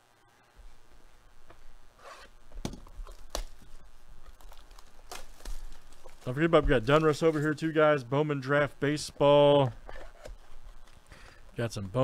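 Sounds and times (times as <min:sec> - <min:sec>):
shrink-wrap crinkling and tearing: 0:03.2 - 0:07.6.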